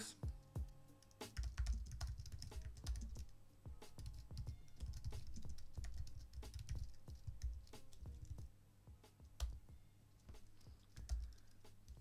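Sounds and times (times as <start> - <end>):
computer keyboard typing: 1.0 - 3.3, 4.0 - 8.4, 10.2 - 12.0.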